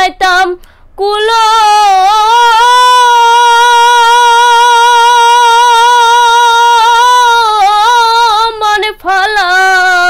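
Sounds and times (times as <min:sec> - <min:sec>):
woman singing a long note: 0:01.0 - 0:10.0.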